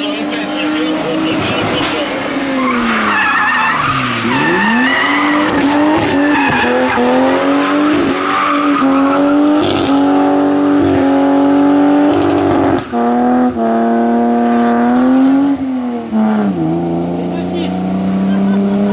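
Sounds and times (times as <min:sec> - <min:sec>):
tyres squealing: 0:00.0 - 0:10.0
car engine revving: 0:00.0 - 0:18.9.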